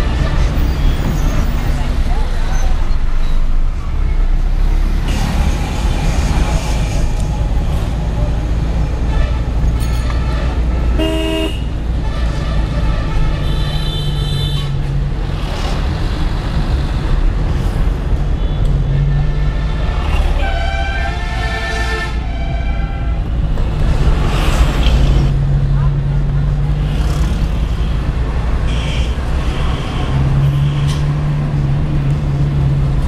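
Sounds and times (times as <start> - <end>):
engine and road rumble: 0.0 - 33.0
vehicle horns honking: 9.2 - 14.8.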